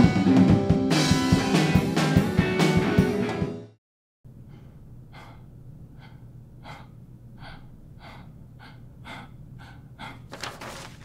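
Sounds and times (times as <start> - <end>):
low steady hum: 4.3 - 10.1
man breathing heavily: 4.3 - 11.0.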